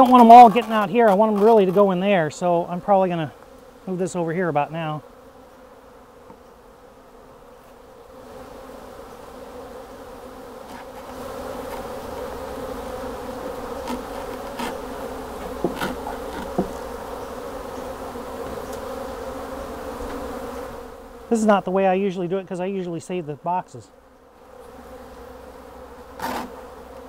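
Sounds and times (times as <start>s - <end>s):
honey bees buzzing: 0.0s - 27.0s
light knocks: 15.4s - 16.8s.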